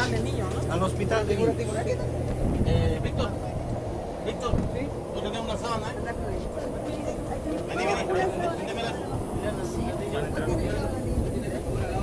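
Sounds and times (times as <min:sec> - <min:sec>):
people talking: 0:00.0 - 0:12.0
vehicle engine idling: 0:00.0 - 0:12.0.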